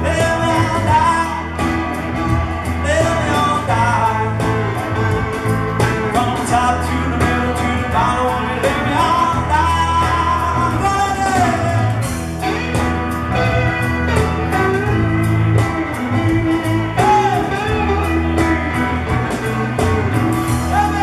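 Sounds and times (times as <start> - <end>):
lead guitar bending notes: 0.0 - 21.0
live band playing blues rock: 0.0 - 21.0.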